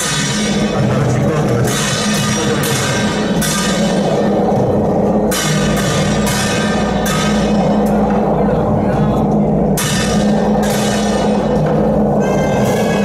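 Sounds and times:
gong strokes ringing: 0:00.0 - 0:13.0
low drone of drumming: 0:00.0 - 0:13.0.

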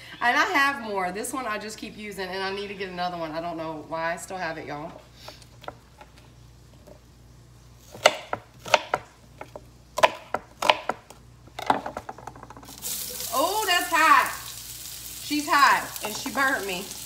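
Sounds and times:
onion sizzling in hot oil: 0:12.6 - 0:17.0.

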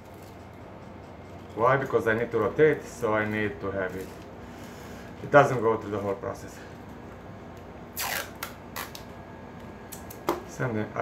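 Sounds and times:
short rasping rip: 0:08.0 - 0:09.0.

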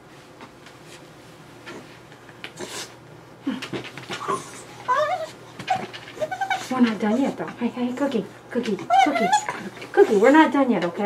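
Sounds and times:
dog whining and whimpering: 0:04.2 - 0:07.6, 0:08.8 - 0:10.4.

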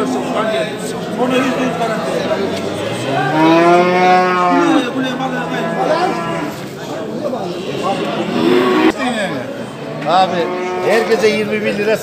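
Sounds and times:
people chattering: 0:00.0 - 0:12.0
cattle mooing: 0:01.5 - 0:06.6, 0:07.4 - 0:09.0, 0:09.8 - 0:11.4.

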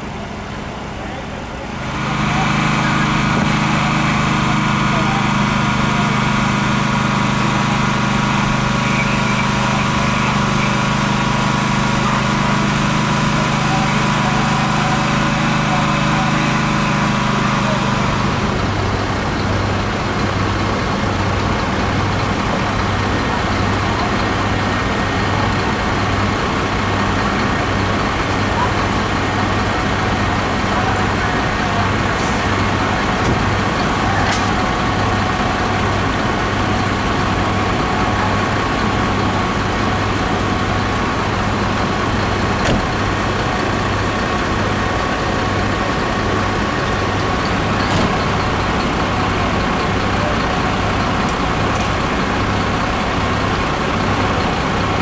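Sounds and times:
diesel engines idling: 0:00.0 - 0:55.0
truck engine throbbing: 0:00.0 - 0:55.0.

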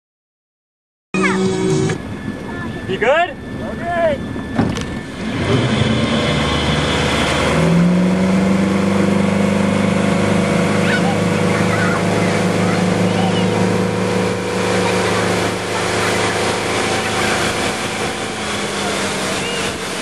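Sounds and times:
boat engine powering up: 0:01.2 - 0:20.0
boat wake churning: 0:01.2 - 0:20.0.

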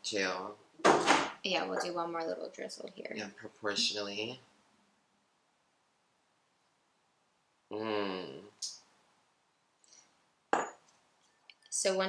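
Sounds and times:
glass bottle knock on countertop: 0:10.5 - 0:10.8.

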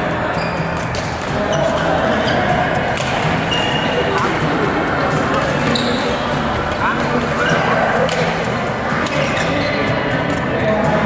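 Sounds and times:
voices in a large hall: 0:00.0 - 0:11.0
rackets striking shuttlecocks: 0:00.6 - 0:07.3, 0:08.0 - 0:09.5.

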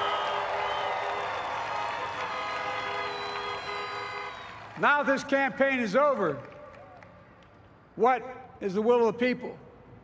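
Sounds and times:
crowd cheering and applauding: 0:00.0 - 0:05.4, 0:06.2 - 0:07.3
car horns honking: 0:02.2 - 0:04.5.

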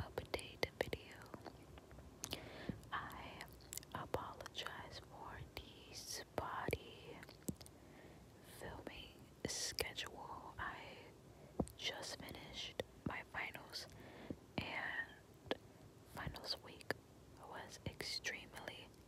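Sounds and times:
person whispering: 0:00.0 - 0:07.4, 0:08.5 - 0:11.1, 0:11.7 - 0:13.9, 0:14.6 - 0:19.0
small mouth clicks: 0:01.2 - 0:02.5, 0:07.2 - 0:07.7.

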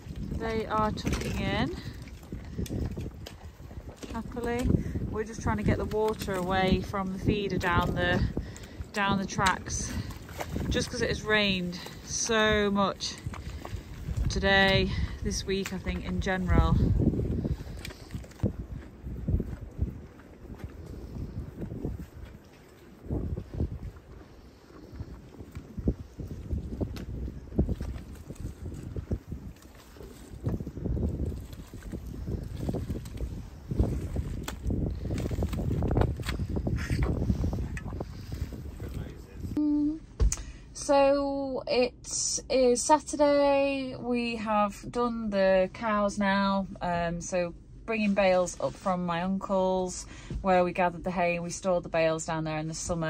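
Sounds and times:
wind buffeting microphone: 0:00.0 - 0:40.4.

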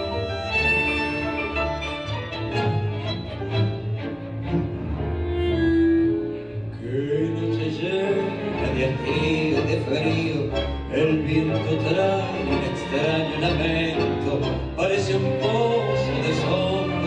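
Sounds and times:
orchestra playing a tango: 0:00.0 - 0:17.0.

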